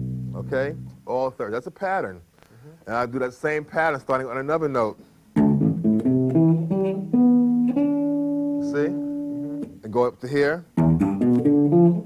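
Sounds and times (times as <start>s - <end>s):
electric bass guitar notes: 0.0s - 1.3s, 5.3s - 10.0s, 10.6s - 12.0s.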